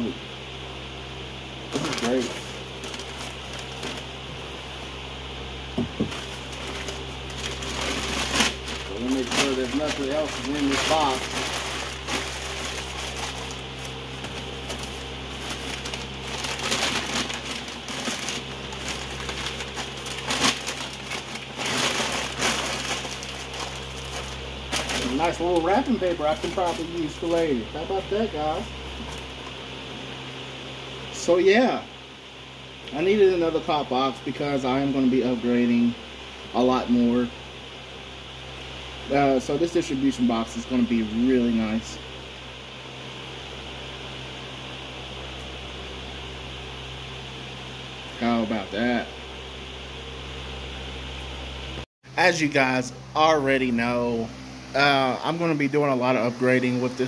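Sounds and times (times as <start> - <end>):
low electrical hum: 0.0 - 57.0
tissue paper rustling: 1.7 - 4.1, 6.0 - 27.4.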